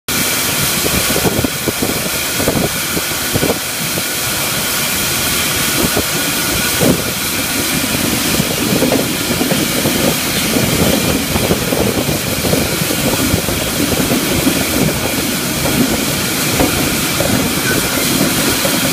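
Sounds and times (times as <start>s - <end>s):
loud steady hiss: 0.1s - 18.9s
low rumbling clatter: 0.1s - 18.9s.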